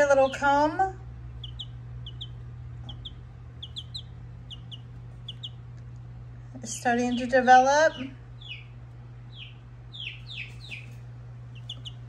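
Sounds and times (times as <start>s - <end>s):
chick peeping: 0.0s - 6.0s, 7.0s - 12.0s.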